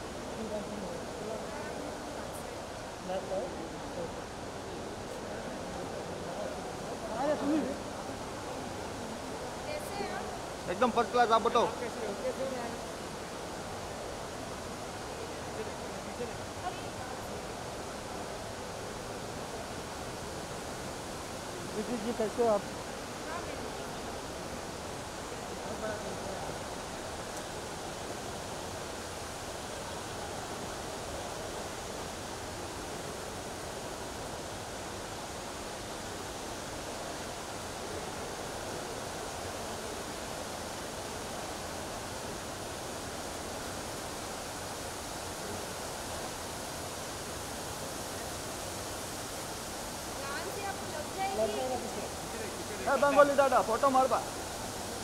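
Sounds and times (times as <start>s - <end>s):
faint indistinct voices: 0.0s - 55.0s
hiss and hum of open space: 0.0s - 55.0s.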